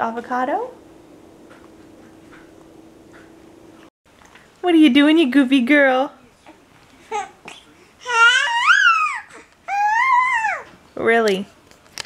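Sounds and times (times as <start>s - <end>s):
baby squealing: 8.0s - 10.7s.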